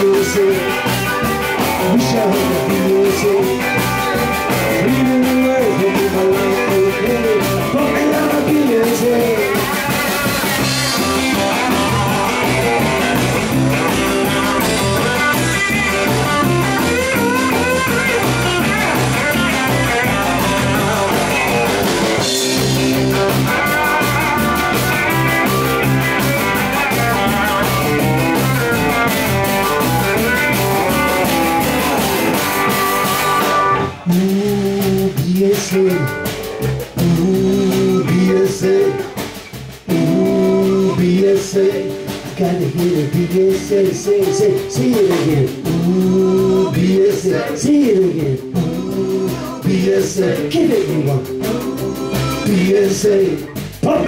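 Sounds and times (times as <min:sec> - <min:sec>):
bass guitar: 0:00.0 - 0:54.0
drum kit: 0:00.0 - 0:54.0.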